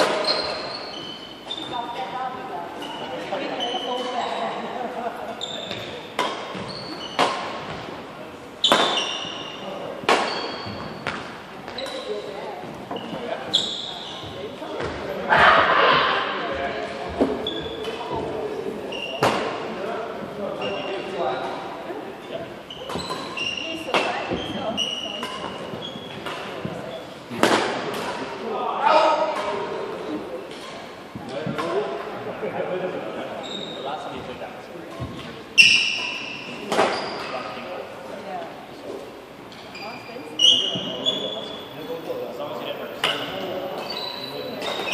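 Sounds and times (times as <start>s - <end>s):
shoe squeaks on hardwood floor: 0.0s - 4.6s, 5.3s - 7.9s, 8.6s - 15.2s, 17.2s - 19.5s, 20.5s - 21.6s, 22.2s - 27.2s, 33.4s - 34.3s, 35.0s - 37.6s, 39.5s - 44.9s
voices chattering: 0.0s - 44.9s
racket hitting shuttlecock: 5.7s - 7.9s, 8.7s - 9.2s, 10.0s - 12.0s, 22.8s - 24.4s, 27.4s - 28.3s
rackets hitting shuttlecock: 8.6s - 9.3s, 10.0s - 12.0s, 22.8s - 24.4s, 25.2s - 28.3s, 34.9s - 37.3s.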